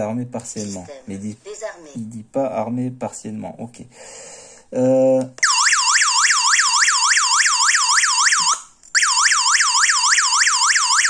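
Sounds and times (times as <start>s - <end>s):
alarm siren fast warbling wail: 5.4s - 11.0s.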